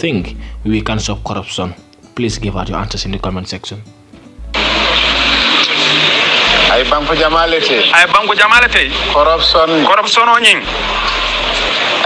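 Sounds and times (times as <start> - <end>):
man speaking: 0.0 - 3.9.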